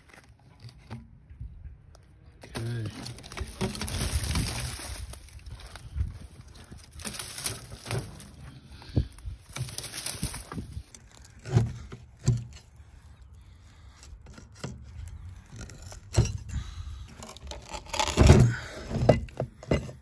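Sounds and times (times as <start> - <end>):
dry vines rustling and snapping: 0.0 - 1.1, 1.9 - 19.4
pry bar levering wood: 15.5 - 20.0.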